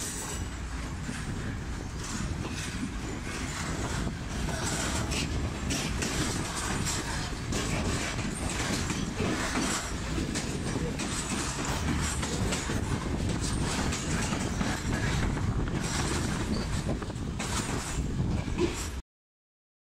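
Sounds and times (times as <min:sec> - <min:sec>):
train wheels rumbling on rails: 0:00.0 - 0:19.0
wheels clicking over track: 0:00.0 - 0:19.0.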